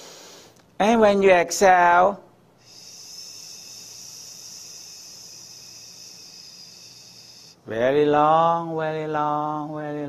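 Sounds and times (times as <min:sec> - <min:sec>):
person exhaling hissing through teeth: 0:00.0 - 0:00.6, 0:02.6 - 0:07.6.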